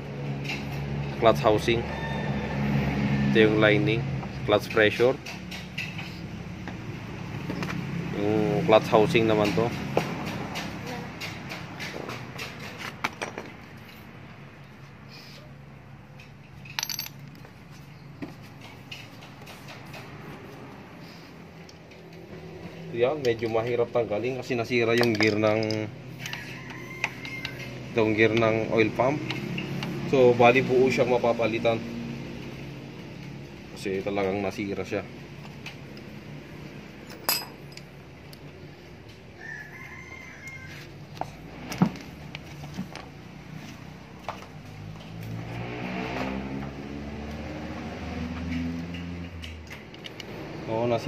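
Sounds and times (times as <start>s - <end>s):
distant rooster crowing: 1.4s - 3.4s, 26.1s - 28.1s, 39.3s - 41.4s
metal engine parts clinking: 16.2s - 19.5s, 24.7s - 26.4s, 36.9s - 38.4s
sharp metallic clink: 37.0s - 37.9s.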